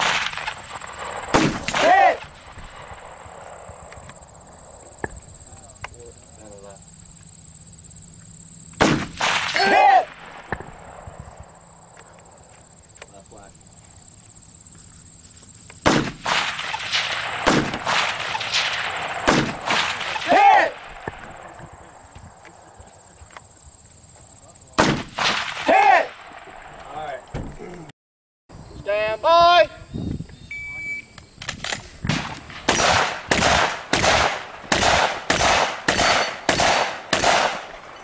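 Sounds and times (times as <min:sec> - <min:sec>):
rifle shots: 0:00.0 - 0:03.8, 0:08.8 - 0:11.6, 0:15.8 - 0:21.7, 0:24.8 - 0:26.8, 0:31.5 - 0:38.0.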